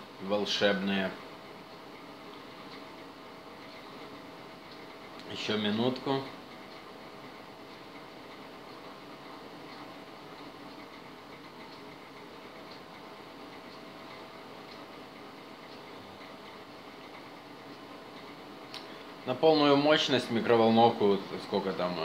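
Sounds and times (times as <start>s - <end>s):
faint constant tone: 0.0s - 22.0s
microwave oven humming: 0.0s - 22.0s.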